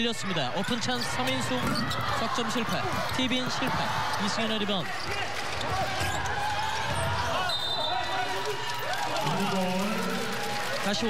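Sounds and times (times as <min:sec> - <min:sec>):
voices in a hall: 0:00.0 - 0:11.0
basketball bouncing on court: 0:00.6 - 0:07.5.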